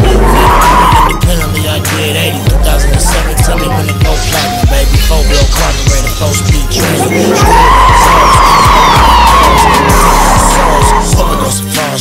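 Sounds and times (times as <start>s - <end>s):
hip hop beat: 0.0s - 12.0s.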